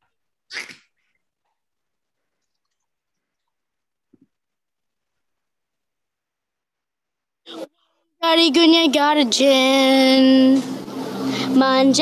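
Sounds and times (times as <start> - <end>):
sharp breathy burst: 10.6 - 11.6.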